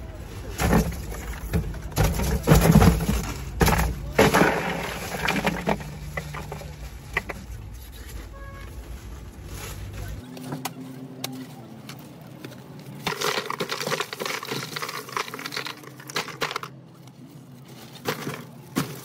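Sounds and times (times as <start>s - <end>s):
plastic bottles knocking and rattling: 0.2s - 10.2s, 12.5s - 17.1s, 17.7s - 19.0s.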